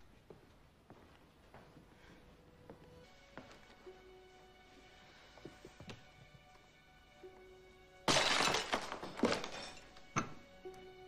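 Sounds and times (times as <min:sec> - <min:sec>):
soft background music: 0:00.0 - 0:11.0
drinking glass shattering: 0:08.1 - 0:10.4
pieces of glass falling: 0:08.1 - 0:10.4.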